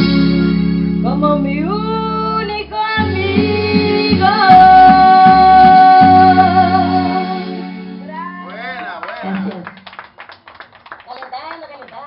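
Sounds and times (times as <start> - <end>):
woman singing a ballad: 0.0 - 8.0
backing music with guitar: 0.0 - 9.9.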